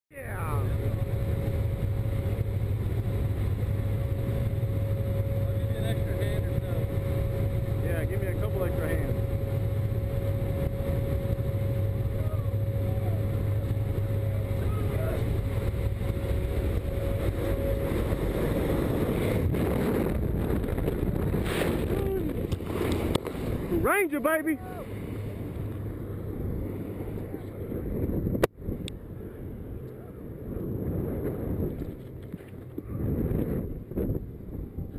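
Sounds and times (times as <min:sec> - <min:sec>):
turboprop engines droning: 0:00.1 - 0:34.9
rough rushing air: 0:00.7 - 0:24.0
faint shouting voices: 0:23.8 - 0:24.9.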